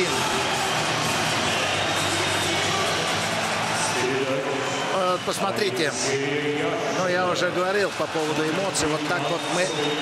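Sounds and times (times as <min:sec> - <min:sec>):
arena crowd cheering: 0:00.0 - 0:10.0
music over arena speakers: 0:00.0 - 0:10.0.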